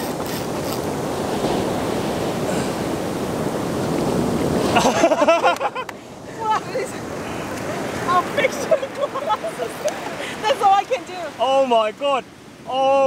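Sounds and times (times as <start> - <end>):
ocean surf breaking: 0.0 - 13.0
woman laughing: 4.7 - 7.0, 7.7 - 11.1.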